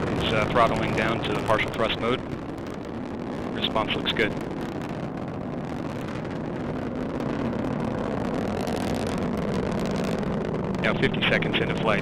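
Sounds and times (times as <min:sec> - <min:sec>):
rocket engine rumble: 0:00.0 - 0:12.0.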